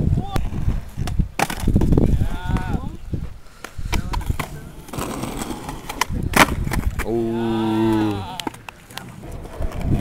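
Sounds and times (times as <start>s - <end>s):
skateboard wheels rolling on concrete: 0.0s - 10.0s
skateboard deck clacking: 1.0s - 2.7s, 3.6s - 7.1s, 7.9s - 10.0s.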